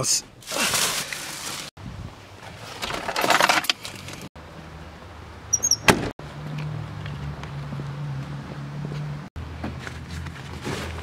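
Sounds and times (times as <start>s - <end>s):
low hum of car driving: 3.9s - 11.0s.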